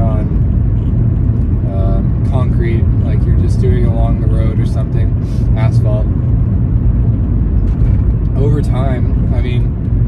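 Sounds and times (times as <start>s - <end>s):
car interior road and engine rumble: 0.0s - 10.0s.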